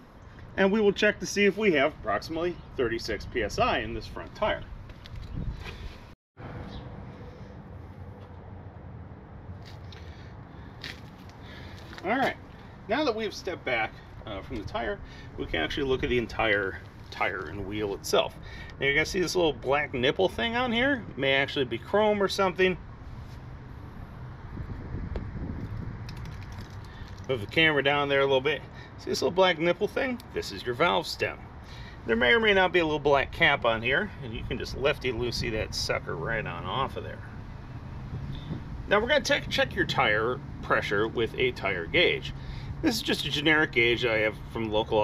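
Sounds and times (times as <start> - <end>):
outdoor background noise: 0.0 - 45.0.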